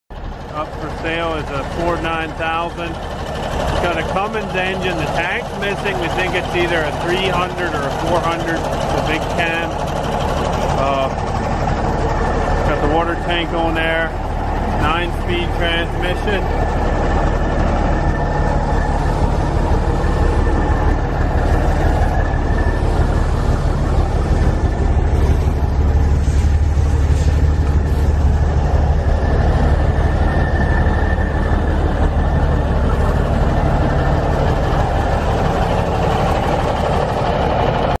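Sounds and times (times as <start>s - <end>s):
diesel truck engine idling: 0.1s - 38.0s.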